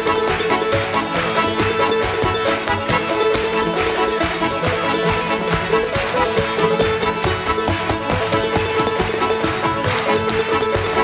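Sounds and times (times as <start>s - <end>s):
fiddle and accordion tune: 0.0s - 11.0s.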